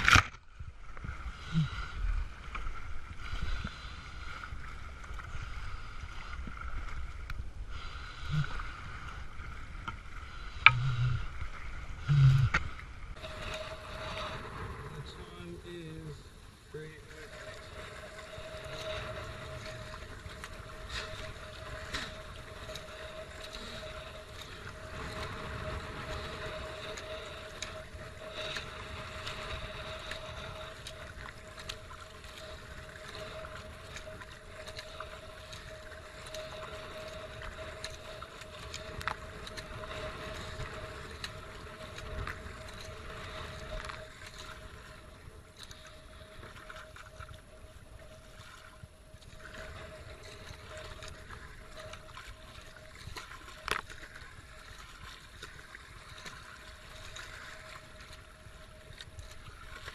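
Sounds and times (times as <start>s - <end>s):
paddle splashing water: 0.0s - 59.9s
water washing along hull: 0.0s - 59.9s
faint steady tone: 0.9s - 59.9s.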